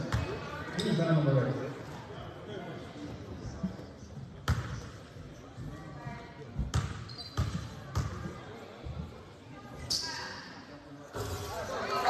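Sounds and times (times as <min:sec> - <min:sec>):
low murmur of voices: 0:00.0 - 0:12.0.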